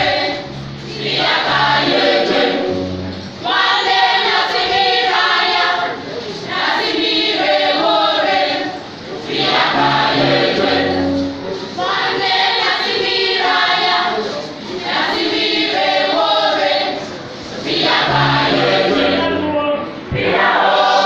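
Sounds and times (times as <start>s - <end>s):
church choir singing: 0.0s - 19.5s, 20.1s - 21.0s.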